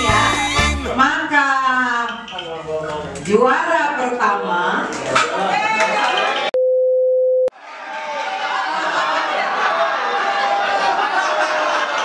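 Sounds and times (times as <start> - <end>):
test pattern sine beep: 6.6 - 7.5.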